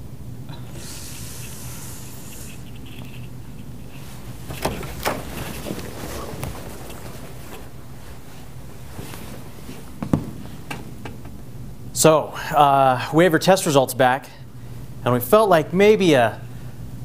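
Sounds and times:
low room hum: 0.0s - 17.0s
footsteps: 3.0s - 10.9s
door opening: 4.2s - 8.0s.

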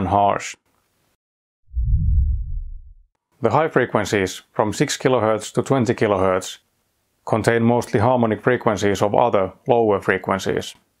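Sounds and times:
deep transition boom: 1.7s - 3.0s.

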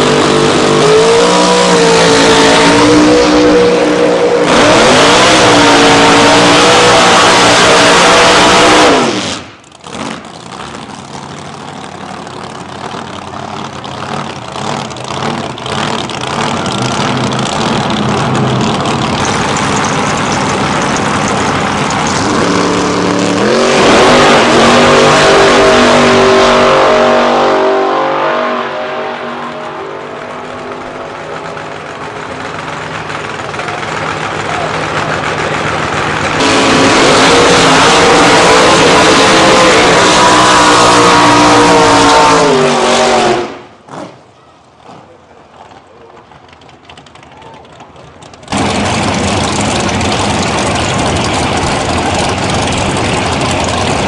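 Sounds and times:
drag car engines revving: 0.0s - 54.0s
drag car launching: 0.0s - 54.0s.

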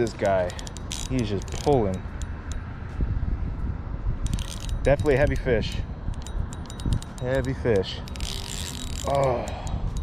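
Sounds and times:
low steady rumble: 0.0s - 10.0s
fishing reel drag clicking: 0.2s - 2.6s, 4.2s - 10.0s.

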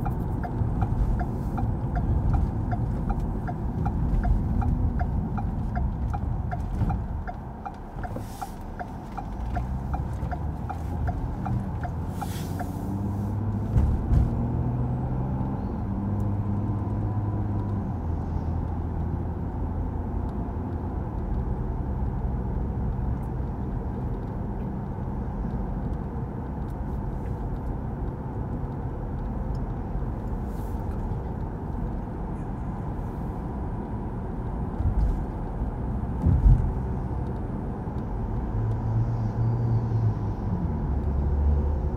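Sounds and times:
car engine hum and road rumble: 0.0s - 41.9s.

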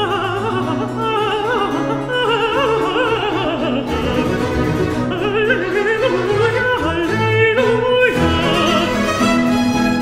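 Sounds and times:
countertenor singing with vibrato: 0.0s - 10.0s
string orchestra: 0.0s - 10.0s.

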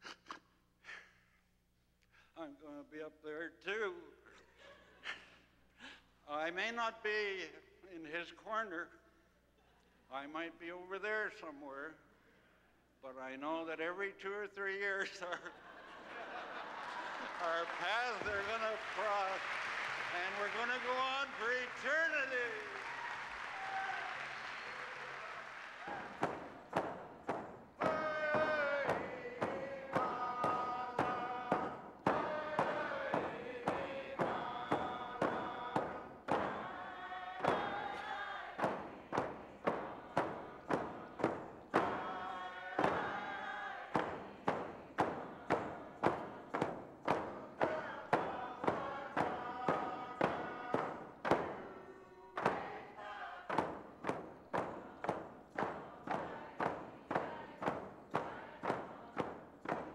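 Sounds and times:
hand drums beating: 23.4s - 59.9s
group singing a chant: 25.9s - 59.9s.

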